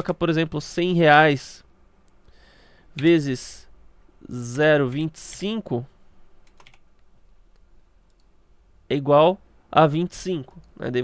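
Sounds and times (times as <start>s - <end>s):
low room hiss: 0.0s - 11.0s
computer input clicks: 6.4s - 6.8s.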